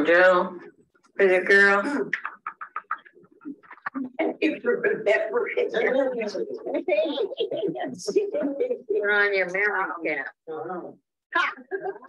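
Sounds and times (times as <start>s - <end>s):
person laughing: 2.0s - 8.9s.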